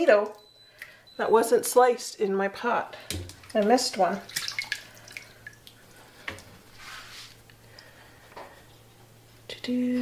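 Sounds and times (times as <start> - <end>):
water dripping: 0.3 - 1.0, 3.0 - 6.6, 7.4 - 7.9
wet potato slices splashing: 3.0 - 6.5.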